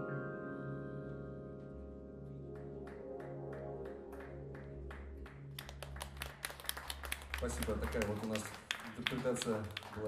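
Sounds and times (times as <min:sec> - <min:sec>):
band chord on keyboard and bass: 0:00.0 - 0:02.6
audience applause: 0:02.6 - 0:10.0.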